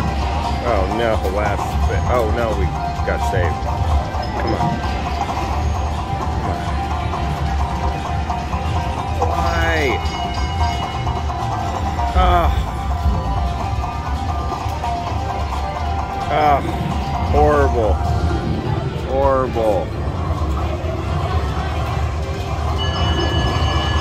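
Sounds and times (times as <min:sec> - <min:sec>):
casino hubbub: 0:00.0 - 0:24.0
slot machine electronic music: 0:00.0 - 0:24.0.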